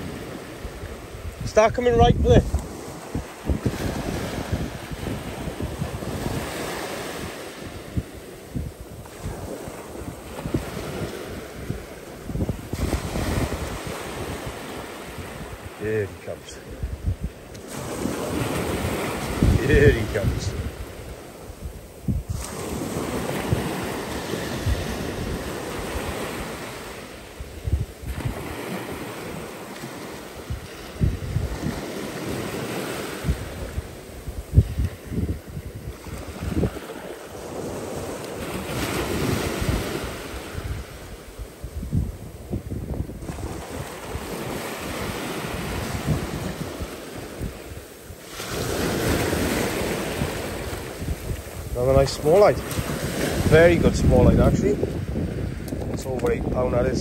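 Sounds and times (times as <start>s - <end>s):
surf breaking on beach: 0.0s - 57.0s
wind buffeting microphone: 0.0s - 57.0s.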